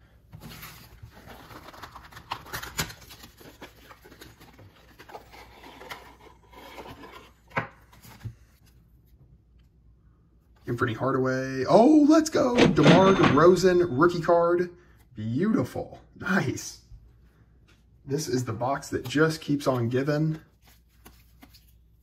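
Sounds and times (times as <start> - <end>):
trading cards handled: 19.0 - 22.0.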